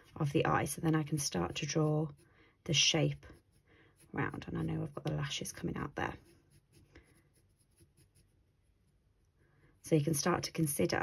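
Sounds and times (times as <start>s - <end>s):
pencil scratching on paper: 0.0s - 9.1s.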